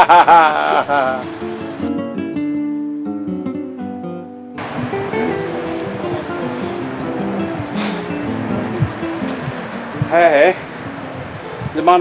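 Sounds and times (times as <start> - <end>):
outdoor background noise: 0.0 - 2.0, 4.6 - 12.0
acoustic guitar melody: 0.0 - 12.0.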